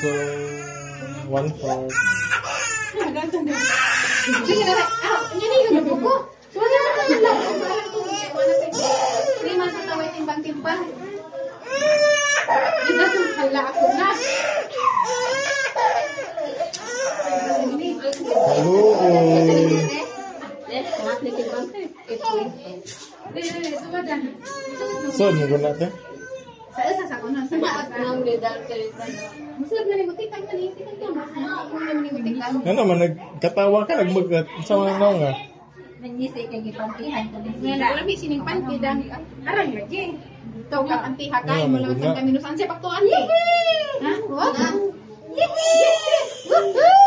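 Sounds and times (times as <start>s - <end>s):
infant crying: 0.0s - 5.6s, 11.4s - 21.7s
women talking: 2.4s - 25.4s, 26.7s - 32.7s, 35.8s - 47.0s.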